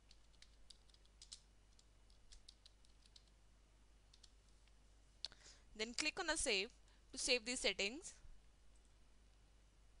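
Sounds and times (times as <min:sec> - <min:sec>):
low steady hum: 0:00.0 - 0:10.0
keyboard keystrokes: 0:00.1 - 0:03.3.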